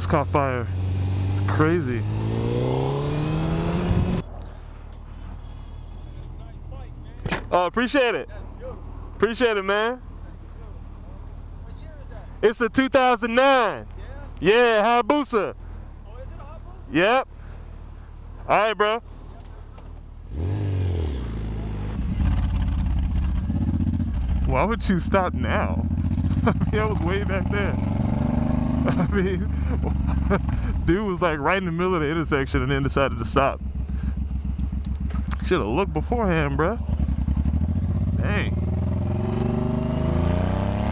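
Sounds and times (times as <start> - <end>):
motorcycle engine revving: 0.0 - 4.3, 20.3 - 30.9, 32.7 - 40.9
engine idling: 32.3 - 38.0.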